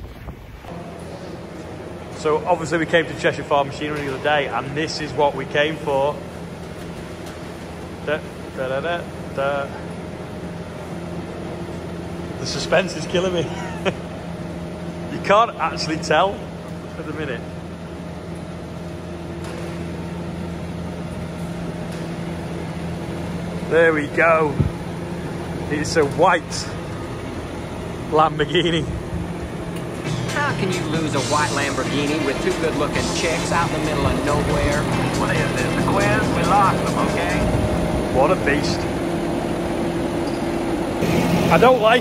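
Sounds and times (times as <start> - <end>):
roller shutter door motor humming: 0.1 - 12.6, 16.1 - 42.0
tractor diesel engine idling: 23.0 - 42.0
low steady drone: 23.6 - 42.0.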